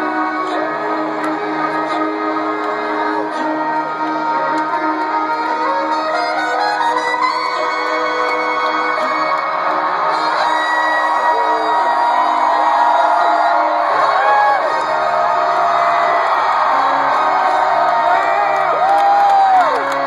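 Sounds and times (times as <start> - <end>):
crowd cheering and screaming: 0.0 - 20.0
long whoops: 2.9 - 20.0.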